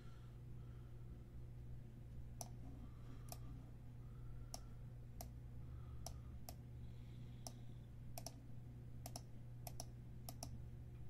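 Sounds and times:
low electrical hum: 0.0s - 11.0s
faint computer clicks: 8.2s - 8.4s, 9.0s - 10.6s.

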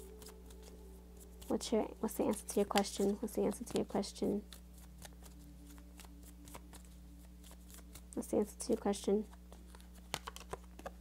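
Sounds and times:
cards being shuffled: 0.0s - 11.0s
faint steady hum: 0.0s - 11.0s.

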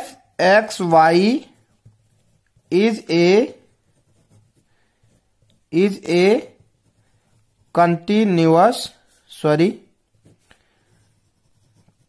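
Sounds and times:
pen scratching on paper: 0.5s - 9.2s, 10.1s - 12.0s.

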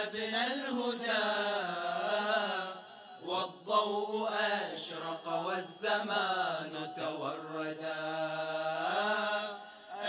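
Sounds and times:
male vocal group chanting: 0.0s - 10.0s.

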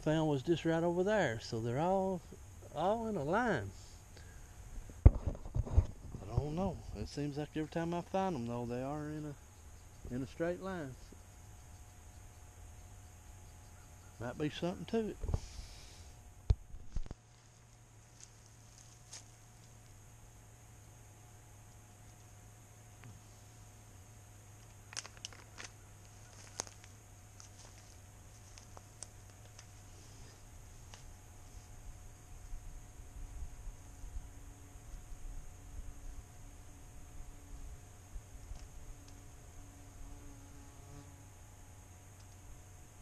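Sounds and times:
faint steady hum: 0.0s - 43.0s
wind rumble on microphone: 4.8s - 7.0s
faint clicks and rustles: 16.4s - 20.0s, 24.6s - 31.8s.

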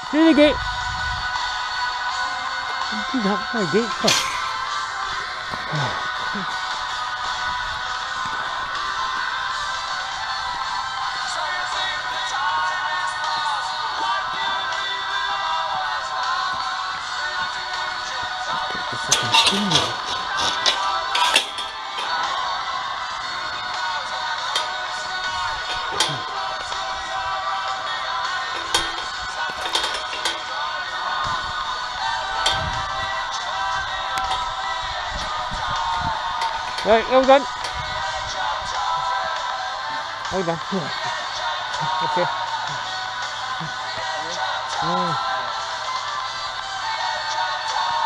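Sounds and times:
background music: 0.0s - 48.0s.

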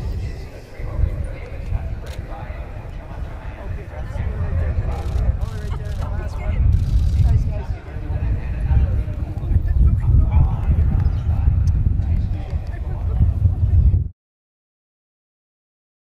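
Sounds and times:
indistinct group voices talking: 0.0s - 14.0s.

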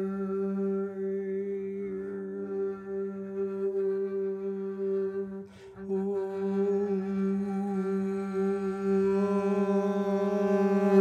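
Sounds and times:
man humming low notes: 0.0s - 11.0s
upright string instrument: 0.0s - 11.0s
quick breath in: 5.5s - 5.8s.

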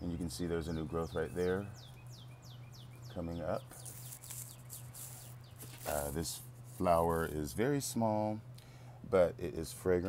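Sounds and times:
small birds chirping: 0.0s - 7.5s
steady low hum: 0.0s - 10.0s.

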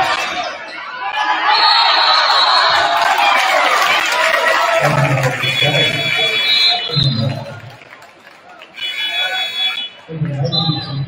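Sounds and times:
man's voice: 4.8s - 7.6s.

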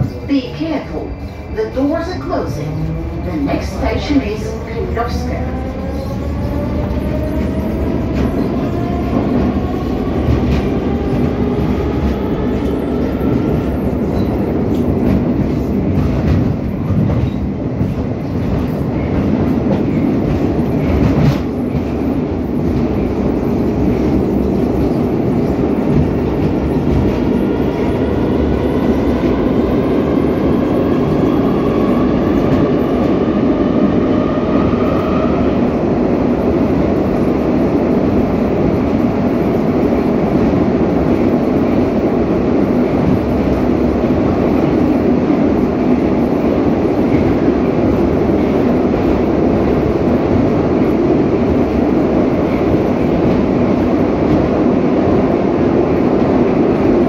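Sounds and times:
train wheels rumbling on rail: 0.0s - 57.0s.

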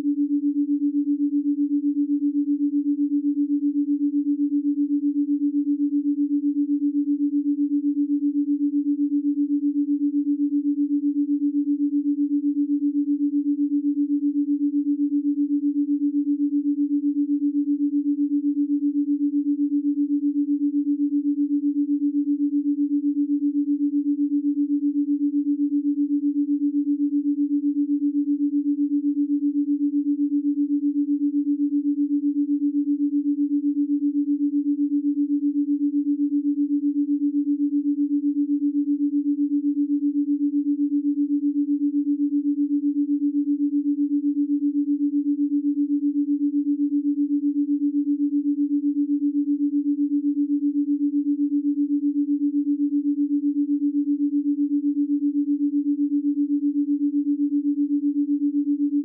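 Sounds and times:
wavering sine tone: 0.0s - 59.0s.

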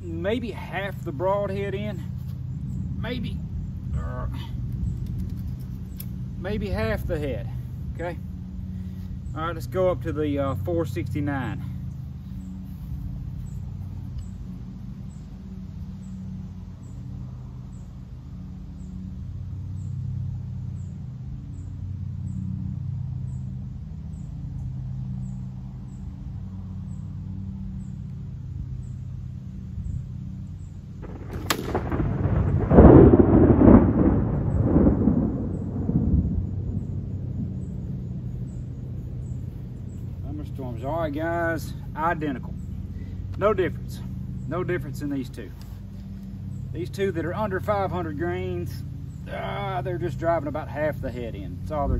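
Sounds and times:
low rumble: 1.0s - 51.9s.

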